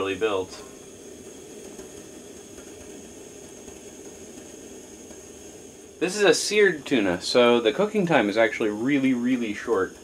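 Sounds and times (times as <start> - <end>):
camp stove burner hissing: 0.0 - 10.0.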